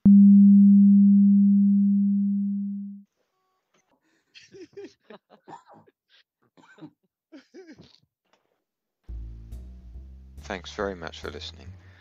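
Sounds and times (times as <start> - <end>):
low electronic tone: 0.0 - 3.0.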